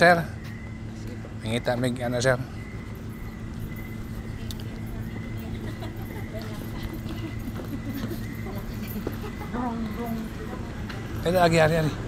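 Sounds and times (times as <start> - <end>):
steady hum: 0.0 - 12.0
voices talking: 0.0 - 12.0
footsteps on brick pavers: 2.7 - 11.3.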